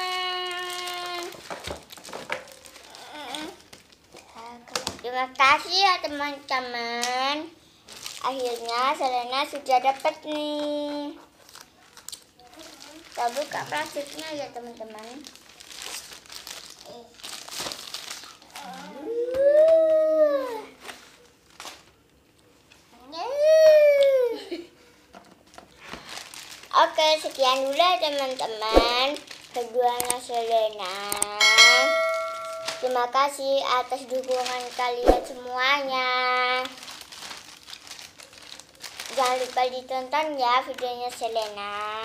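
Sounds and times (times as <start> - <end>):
plastic wrapping crinkling: 0.0 - 4.9, 7.9 - 18.8, 20.8 - 22.9, 25.1 - 42.0.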